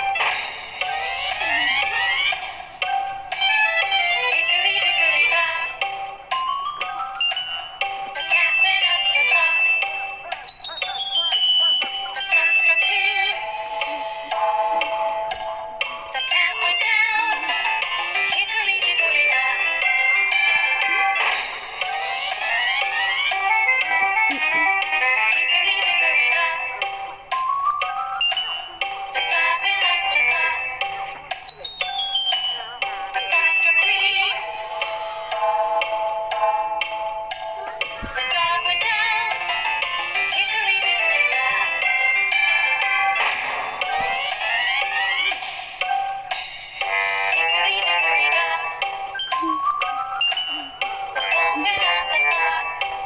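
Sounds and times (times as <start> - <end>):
nursery rhyme music: 0.0 - 53.0
high-pitched synthetic singing voice: 1.1 - 2.4, 6.8 - 14.1, 16.2 - 17.6, 22.2 - 26.9, 27.9 - 34.4, 37.6 - 39.6, 40.2 - 42.0, 43.8 - 45.5, 46.9 - 52.9.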